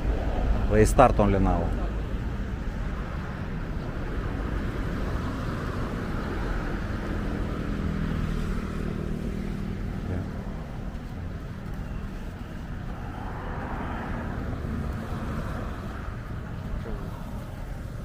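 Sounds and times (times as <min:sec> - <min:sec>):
low rumble of traffic: 0:00.0 - 0:18.0
vehicle engine passing: 0:04.1 - 0:17.9.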